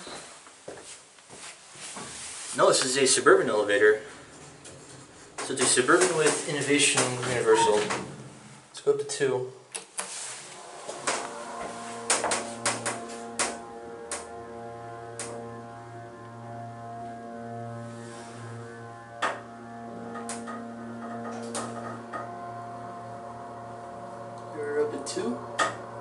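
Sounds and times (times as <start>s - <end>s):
hydraulic elevator hum: 2.9s - 8.8s, 10.2s - 26.0s.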